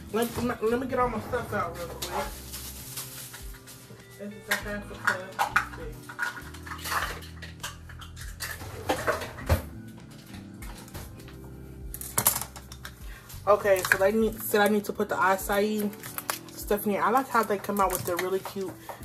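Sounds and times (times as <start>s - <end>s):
dishes and utensils clattering: 4.5s - 11.3s.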